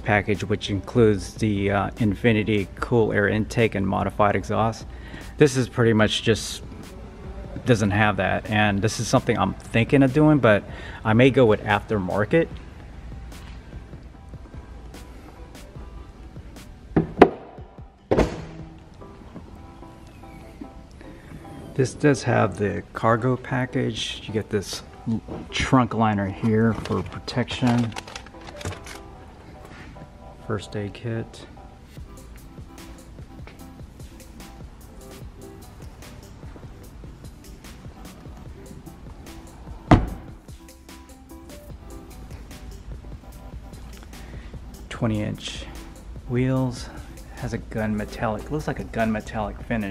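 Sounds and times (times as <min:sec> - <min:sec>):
background music: 0:00.0 - 0:49.9
car hood shutting thunk: 0:17.0 - 0:18.7, 0:39.9 - 0:40.3.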